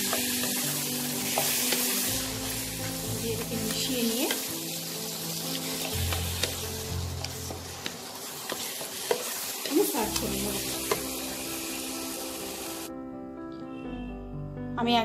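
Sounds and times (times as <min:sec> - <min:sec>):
spatula scraping eggplant in wok: 0:00.0 - 0:05.0, 0:05.6 - 0:11.4
sizzling frying hiss: 0:00.0 - 0:12.9.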